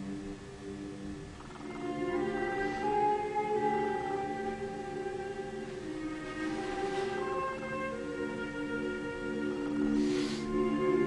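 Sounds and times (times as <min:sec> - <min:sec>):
held low chords: 0:00.0 - 0:11.0
higher sustained notes: 0:00.0 - 0:11.0.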